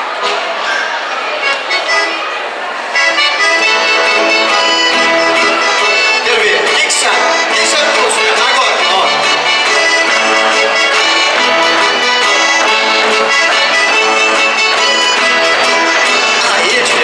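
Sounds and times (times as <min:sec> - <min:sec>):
accordion playing a tune: 0:00.0 - 0:17.0
voices of children and adults: 0:00.0 - 0:17.0.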